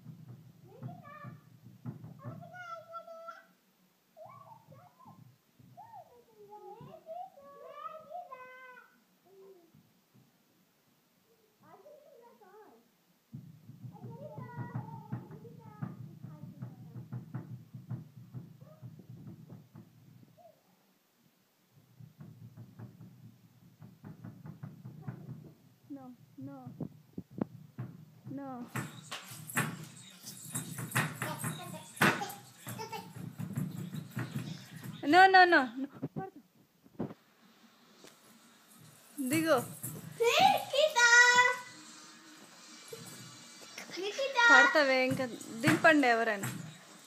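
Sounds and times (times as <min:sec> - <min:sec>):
feet stamping on glass: 0:27.3 - 0:35.3, 0:44.4 - 0:47.0.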